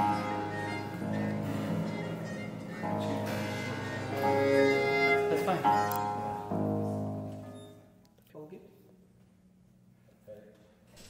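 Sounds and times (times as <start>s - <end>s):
harpsichord: 0.0s - 7.4s
violin playing: 0.0s - 7.7s.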